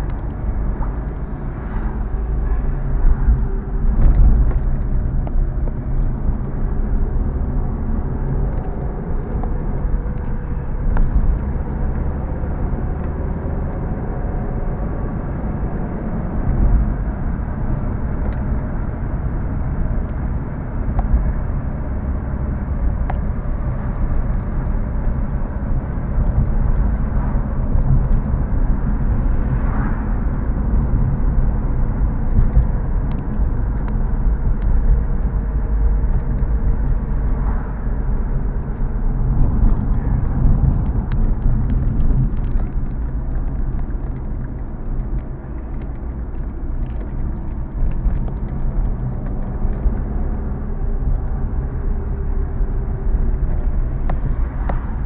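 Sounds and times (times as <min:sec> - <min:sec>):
car interior engine and tyre rumble: 0:00.0 - 0:55.0.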